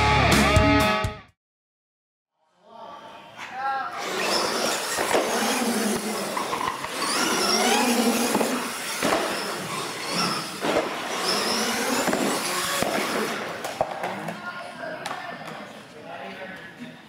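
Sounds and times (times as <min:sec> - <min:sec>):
toy truck motor whining: 0:03.9 - 0:13.7.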